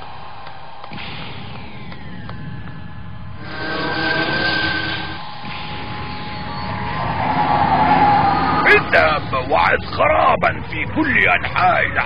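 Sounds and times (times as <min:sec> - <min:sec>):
mechanical hum with held tone: 0:00.0 - 0:11.0
rumbling whir: 0:00.0 - 0:12.0
voice: 0:08.6 - 0:12.0.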